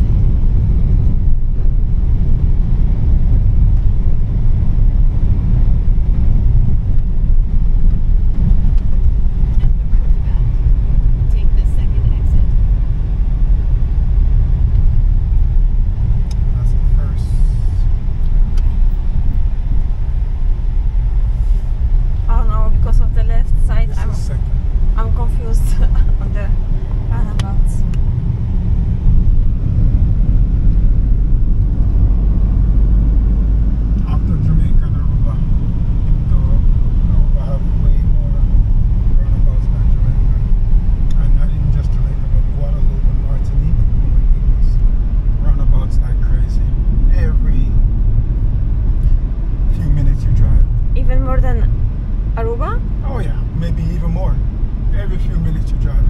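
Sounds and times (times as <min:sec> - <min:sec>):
car engine and tyres rumbling: 0:00.0 - 0:56.0
faint voices: 0:34.1 - 0:35.4, 0:36.2 - 0:38.5, 0:41.2 - 0:44.8.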